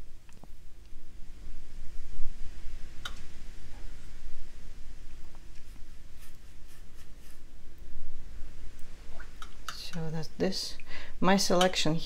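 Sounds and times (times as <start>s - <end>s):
steady low hum: 0.0s - 12.0s
brush stroking wet paint on paper: 5.3s - 7.6s.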